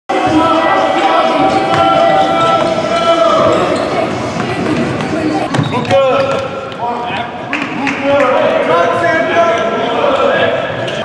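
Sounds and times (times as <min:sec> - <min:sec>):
indistinct voices: 0:00.1 - 0:11.0.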